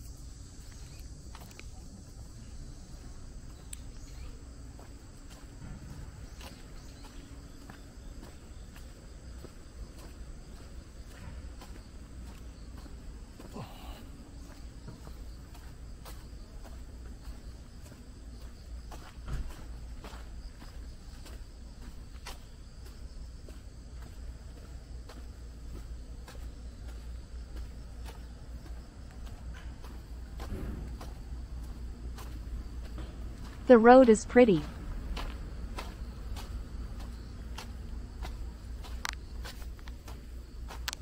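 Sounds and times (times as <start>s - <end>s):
footsteps on dirt path: 0.0s - 41.0s
high insect buzz: 0.0s - 41.0s.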